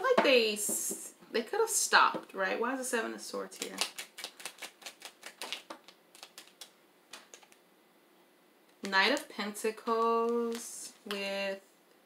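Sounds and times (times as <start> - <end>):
cards shuffled by hand: 3.6 - 7.6.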